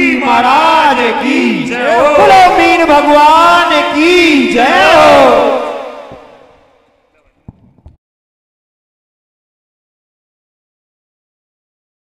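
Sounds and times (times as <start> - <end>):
men calling out slogans: 0.0 - 6.4.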